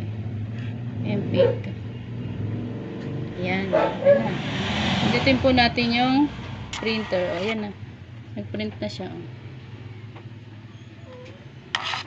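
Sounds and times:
short sharp rasp: 11.7 - 12.0.

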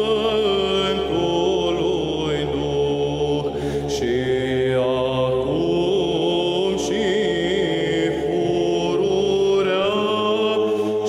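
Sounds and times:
chanted vocal music: 0.0 - 11.0
steady held drone: 0.0 - 11.0.

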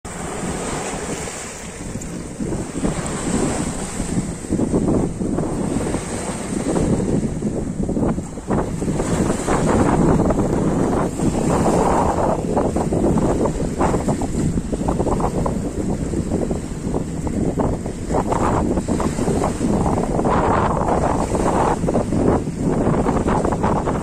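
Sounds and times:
waves breaking over rocks: 0.1 - 24.0
wind buffeting microphone: 0.1 - 24.0.

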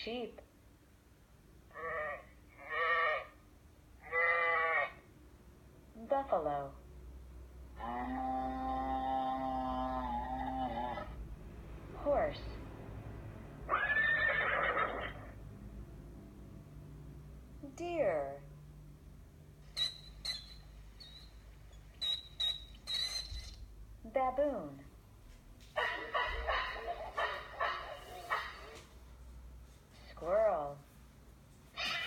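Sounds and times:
baboon barking through speaker: 1.7 - 3.4, 25.8 - 28.9
horse whinny through speaker: 13.7 - 15.3.

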